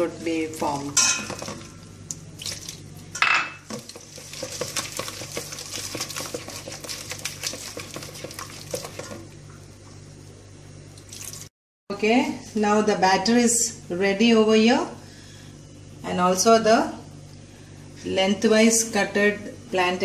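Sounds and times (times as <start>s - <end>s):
hand squelching wet batter: 3.8s - 9.3s.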